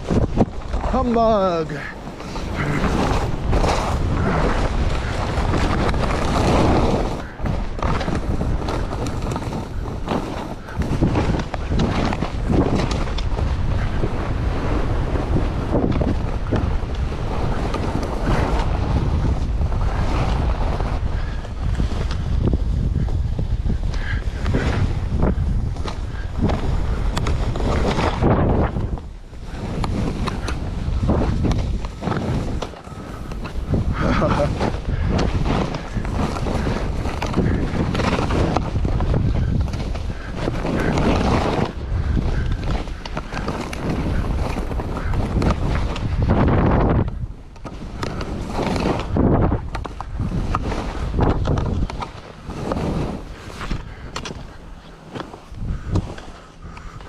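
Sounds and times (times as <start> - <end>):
wind rushing over microphone: 0.0 - 57.0
skis hissing through snow: 0.8 - 7.4, 8.2 - 12.0, 52.0 - 53.8.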